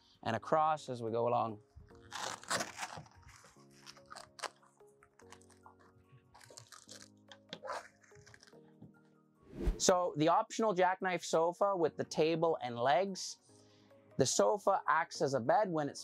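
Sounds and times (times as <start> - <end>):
faint background music: 0.0 - 16.0
canvas rustling: 2.0 - 4.6
velcro clicks: 2.0 - 8.6.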